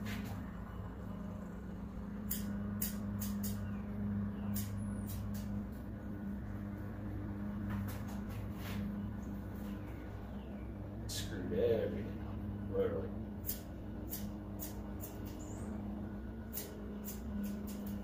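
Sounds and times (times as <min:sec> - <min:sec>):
steady low hum: 0:00.0 - 0:18.0
scissors snipping hair: 0:02.3 - 0:03.6, 0:04.5 - 0:05.5, 0:13.4 - 0:15.5, 0:16.5 - 0:18.0.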